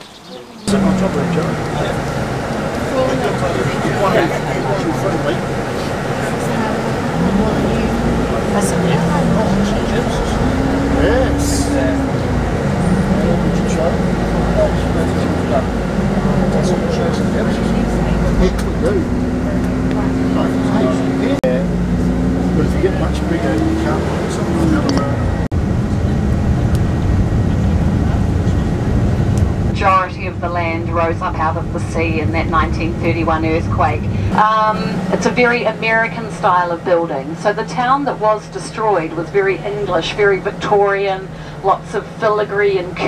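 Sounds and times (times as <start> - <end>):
bus engine and road rumble: 0.0 - 43.0.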